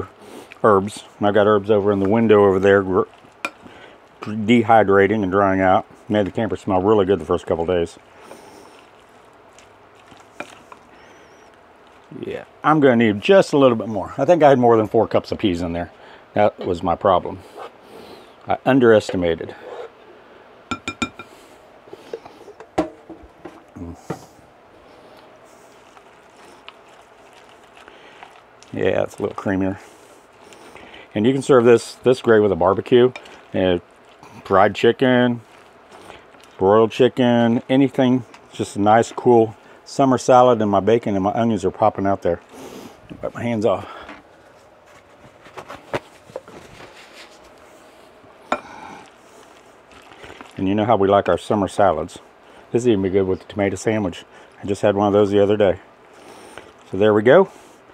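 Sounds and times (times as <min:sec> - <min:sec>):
spoon tapping glass bowl: 0:20.7 - 0:21.3
kitchen things knocking and clattering: 0:22.6 - 0:23.6.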